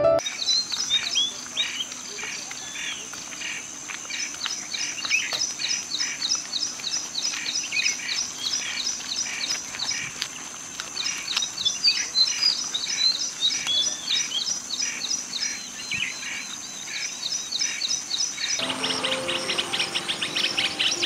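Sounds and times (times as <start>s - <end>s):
background music: 0.0s - 0.2s, 18.6s - 21.0s
bird chirping: 11.6s - 21.0s.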